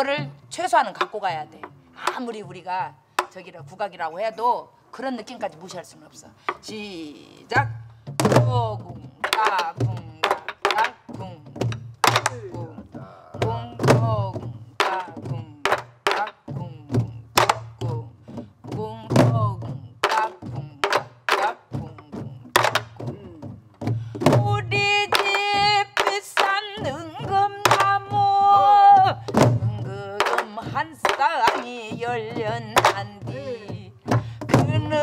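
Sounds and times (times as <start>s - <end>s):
woman singing: 0.0s - 35.0s
barrel drums played with sticks: 7.5s - 35.0s.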